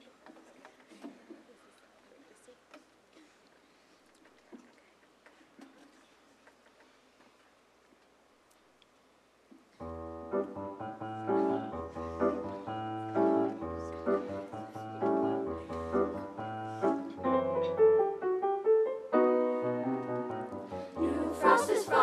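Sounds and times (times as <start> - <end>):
grand piano chords and melody: 9.8 - 22.0.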